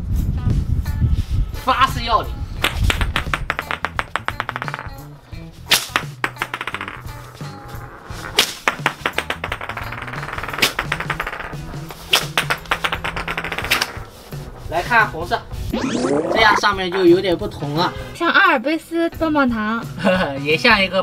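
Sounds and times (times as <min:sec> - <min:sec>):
background music: 0:00.3 - 0:21.0
whip cracking: 0:05.7 - 0:06.0.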